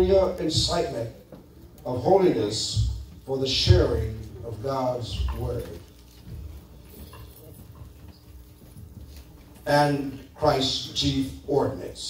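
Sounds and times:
low steady hum: 0.0s - 12.0s
person reading over pa system: 0.0s - 12.0s.

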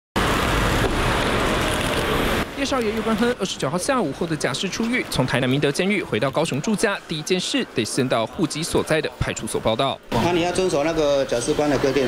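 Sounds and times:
road traffic noise: 0.2s - 12.0s.

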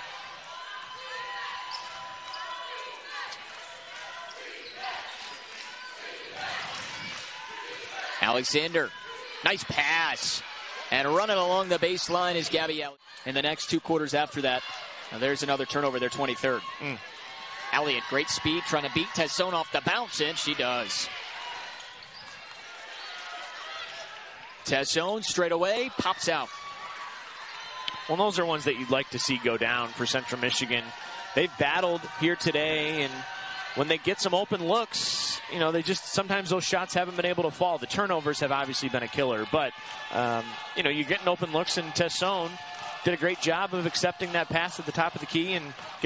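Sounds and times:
low crowd murmur: 0.0s - 46.0s.

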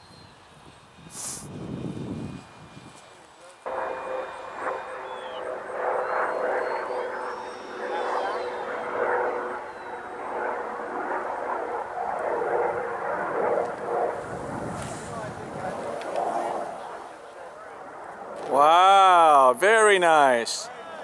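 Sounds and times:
model jet fan whine: 0.0s - 21.0s.

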